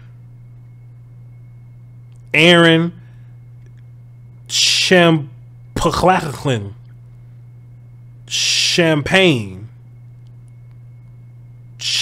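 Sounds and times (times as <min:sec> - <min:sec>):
faint high-pitched whine: 0:00.0 - 0:12.0
steady low hum: 0:00.0 - 0:12.0.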